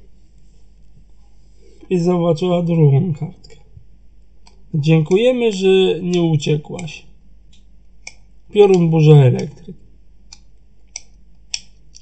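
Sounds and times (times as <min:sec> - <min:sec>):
low steady hum: 0:00.0 - 0:12.0
faint sharp clicks: 0:06.8 - 0:09.5, 0:10.3 - 0:12.0.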